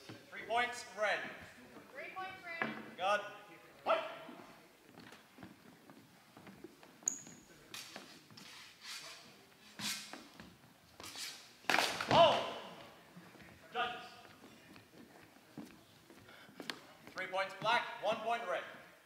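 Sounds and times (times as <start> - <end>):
voices calling out in echoing hall: 0.0 - 4.8, 11.8 - 19.0.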